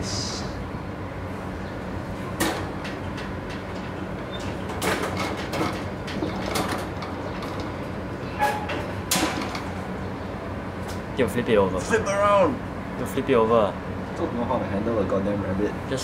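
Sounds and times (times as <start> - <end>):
low background hum: 0.0 - 16.0.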